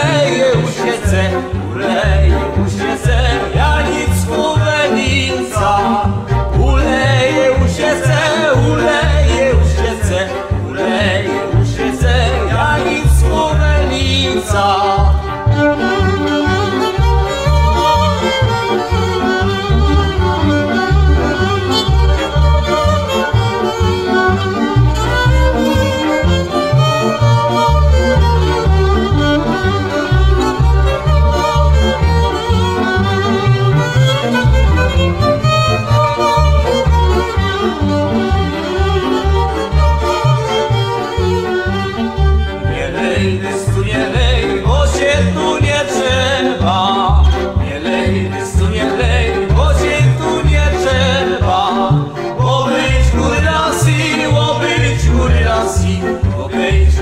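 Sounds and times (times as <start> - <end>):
bowed bass rhythm: 0.0 - 57.0
folk fiddle melody: 0.0 - 57.0.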